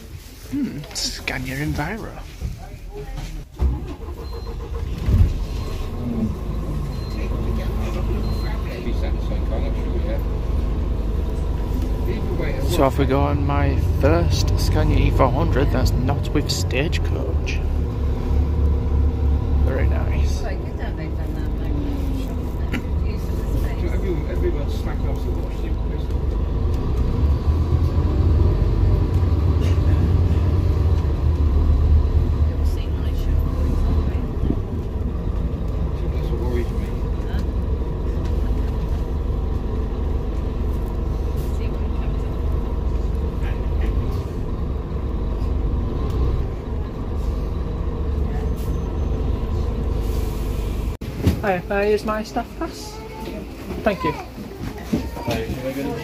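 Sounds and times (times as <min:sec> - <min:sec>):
bus diesel engine rumble: 0:00.0 - 0:56.0
bus body rattles and clicks: 0:01.6 - 0:13.2, 0:13.9 - 0:49.8, 0:50.7 - 0:52.2, 0:53.1 - 0:56.0.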